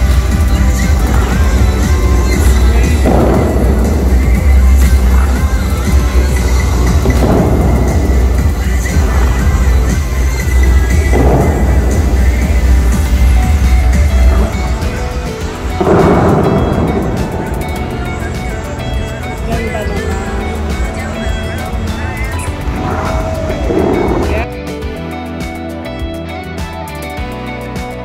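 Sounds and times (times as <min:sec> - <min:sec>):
music over loudspeakers: 0:00.0 - 0:28.0.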